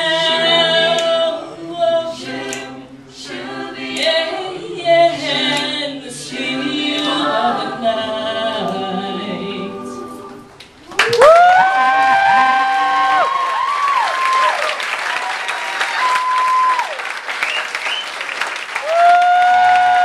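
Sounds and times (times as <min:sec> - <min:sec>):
a cappella group singing: 0:00.0 - 0:10.6.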